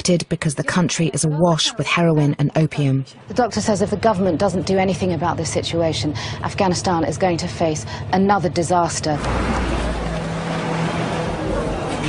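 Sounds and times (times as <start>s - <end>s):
steady low hum: 0.0s - 12.0s
street noise: 0.0s - 12.0s
car passing: 3.8s - 12.0s.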